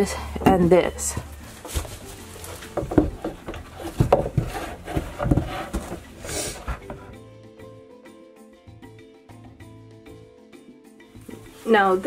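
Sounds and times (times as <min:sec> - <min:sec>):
soft background music: 0:00.0 - 0:12.0
knocks and rubbing on plywood: 0:00.4 - 0:07.2.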